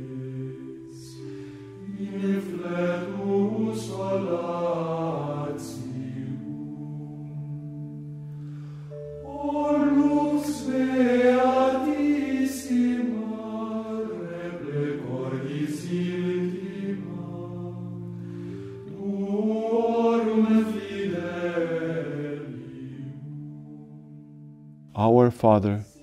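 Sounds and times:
voices singing slow chant: 0.0s - 26.0s.

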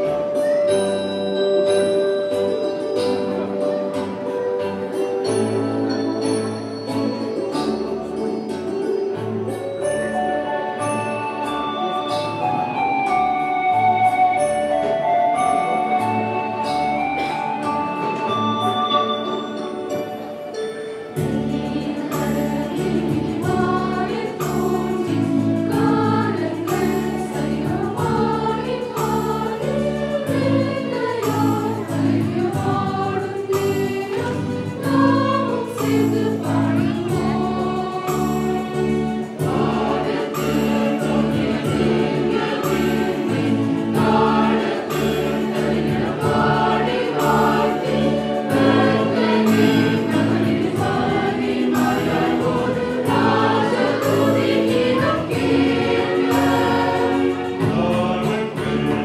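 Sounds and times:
choir singing a carol: 0.0s - 59.0s
accompaniment with steady beat: 10.3s - 59.0s.

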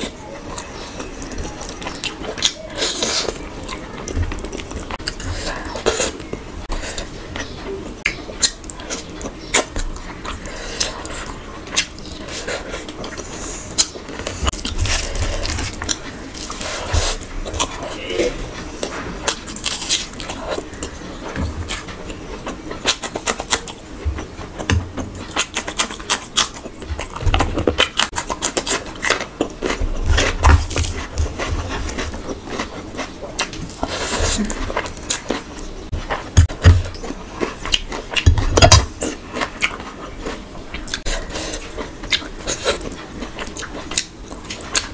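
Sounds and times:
chewing and lip-smacking: 7.0s - 44.9s.

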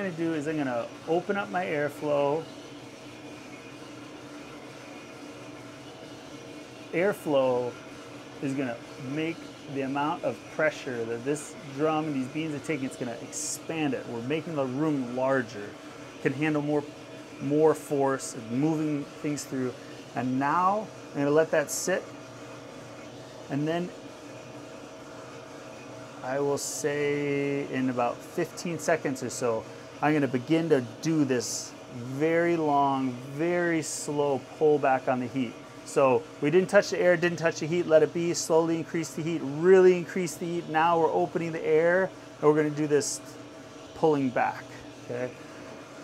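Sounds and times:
coffee roaster rushing noise: 0.0s - 46.0s
faint hum of turning drum: 0.0s - 46.0s.

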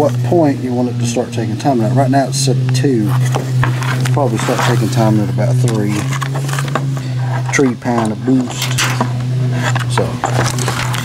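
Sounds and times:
steady low hum: 0.0s - 11.0s
packaging crackling and rustling: 8.6s - 11.0s.

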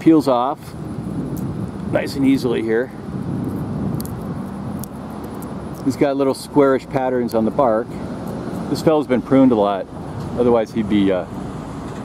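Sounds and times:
low rumble of vehicle traffic: 0.0s - 12.0s.

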